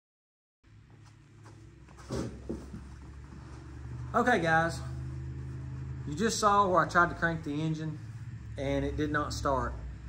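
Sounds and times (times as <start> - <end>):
steady low hum: 0.7 - 10.0
bumps and rustles: 0.9 - 4.1.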